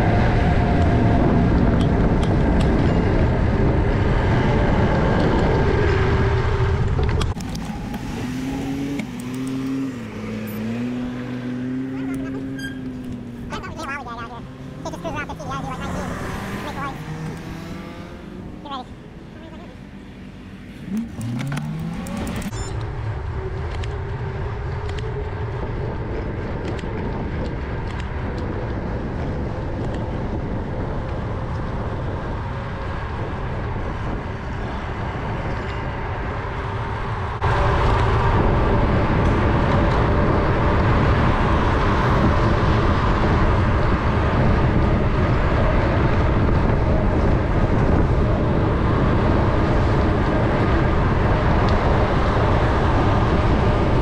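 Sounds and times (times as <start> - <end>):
wind on microphone: 0.0 - 20.0, 20.8 - 54.0
cars passing: 0.0 - 54.0.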